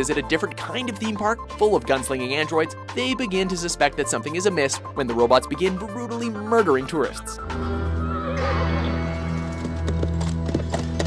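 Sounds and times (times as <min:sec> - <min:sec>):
film score with low notes: 0:00.0 - 0:11.0
horse hooves clip-clopping: 0:09.2 - 0:11.0.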